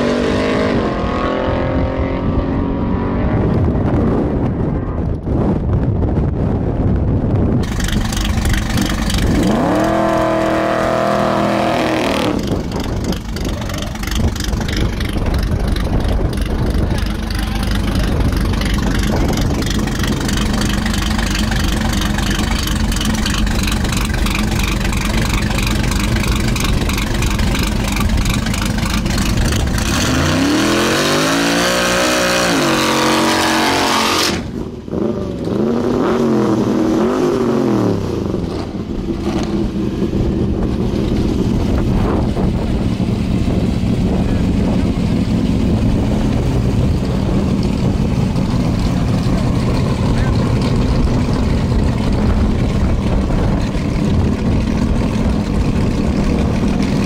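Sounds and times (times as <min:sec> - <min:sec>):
unmuffled engine revving: 0:00.0 - 0:57.0.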